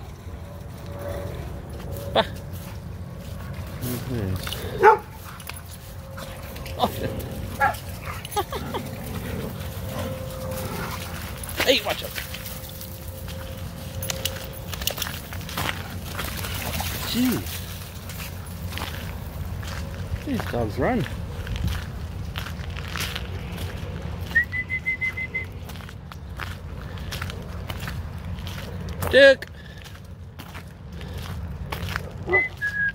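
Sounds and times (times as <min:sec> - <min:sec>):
footsteps on gravel: 0:00.0 - 0:32.9
dogs yipping and whining: 0:06.1 - 0:11.3, 0:32.2 - 0:32.9.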